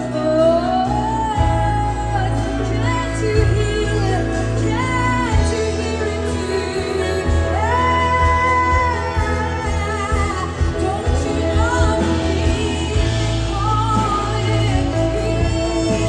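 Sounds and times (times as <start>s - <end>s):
acoustic guitars: 0.0s - 16.0s
keyboard: 0.0s - 16.0s
steady bass: 0.0s - 16.0s
woman singing: 0.0s - 16.0s.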